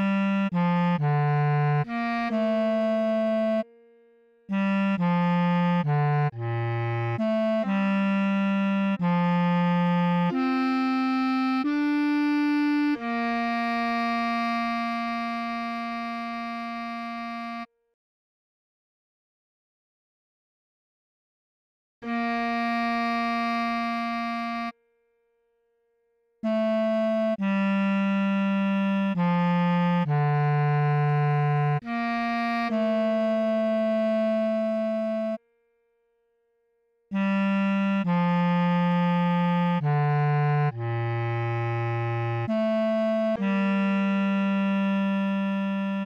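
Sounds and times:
bass clarinet holding low note: 0.0s - 17.7s, 22.0s - 24.8s, 26.4s - 35.4s, 37.1s - 46.0s.

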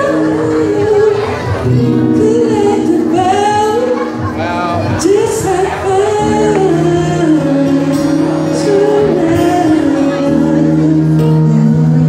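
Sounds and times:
man singing ballad: 0.0s - 12.0s
strummed acoustic guitar: 0.0s - 12.0s.

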